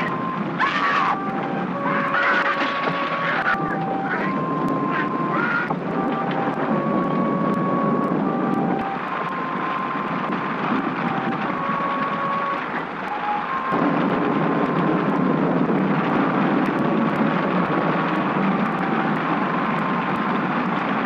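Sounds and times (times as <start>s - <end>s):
slow melody of held notes: 0.0s - 0.5s, 1.1s - 13.8s
heavy rain and wind: 0.0s - 21.0s.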